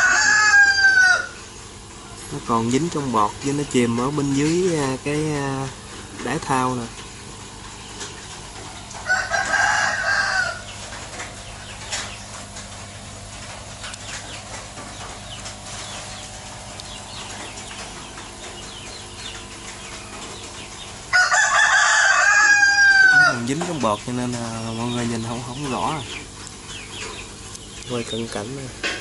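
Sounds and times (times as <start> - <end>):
rooster crowing: 0.0 - 1.4, 9.0 - 10.8, 21.1 - 23.5.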